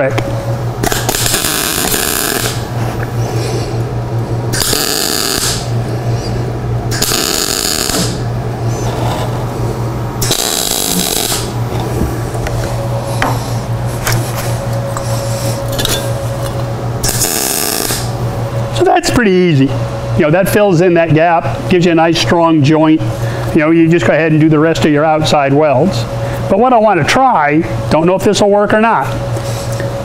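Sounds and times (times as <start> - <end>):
welder low hum: 0.0 - 18.8
welding arc sizzling and crackling: 0.8 - 2.8, 4.5 - 5.8, 6.9 - 12.8, 15.5 - 18.2.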